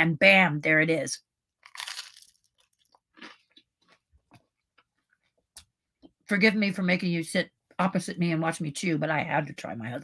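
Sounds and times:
person chewing food: 1.6 - 5.8.

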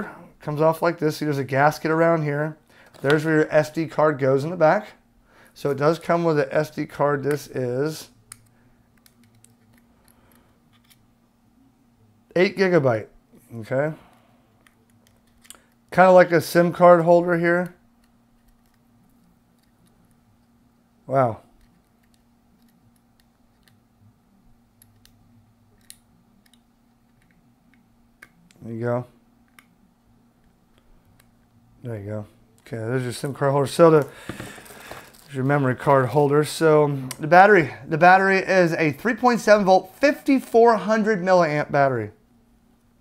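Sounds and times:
faint room hum: 0.0 - 43.0.

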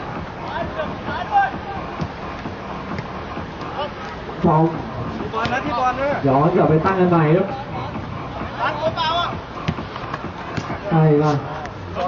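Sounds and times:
football game noise: 0.0 - 12.0
players shouting: 0.3 - 2.4.

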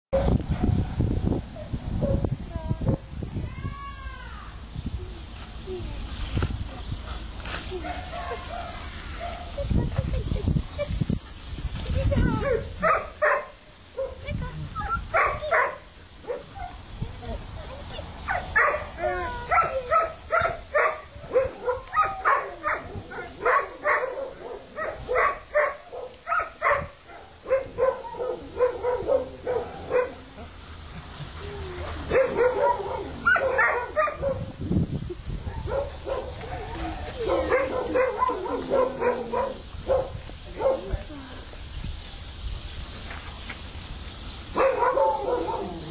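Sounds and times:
dogs barking: 12.4 - 14.3, 15.1 - 16.8, 18.3 - 30.3, 32.1 - 34.5, 35.4 - 41.0, 44.5 - 45.9.

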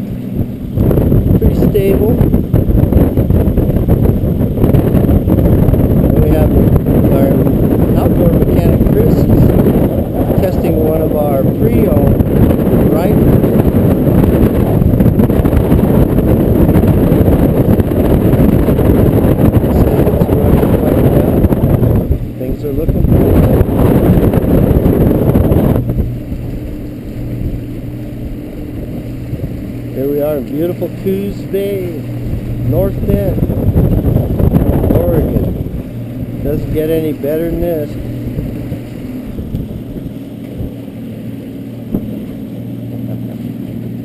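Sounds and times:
outboard motor droning: 0.0 - 44.0
rushing water: 0.0 - 44.0
wind buffeting microphone: 0.0 - 44.0.

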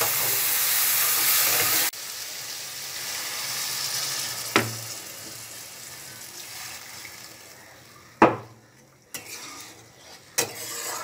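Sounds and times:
spatula scraping a pan: 9.1 - 11.0.

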